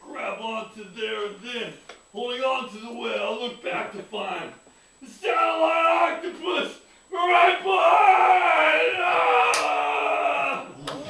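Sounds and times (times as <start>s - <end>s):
man shouting into a microphone: 2.2s - 10.8s.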